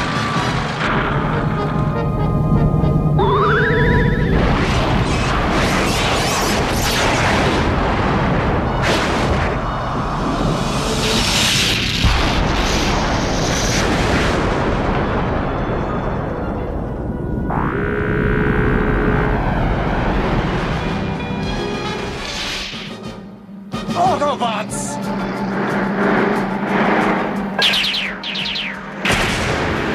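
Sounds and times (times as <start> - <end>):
music: 0.0 - 29.9
rising electronic whine: 17.1 - 21.1, 25.2 - 29.1
sharp boom: 27.6 - 29.9.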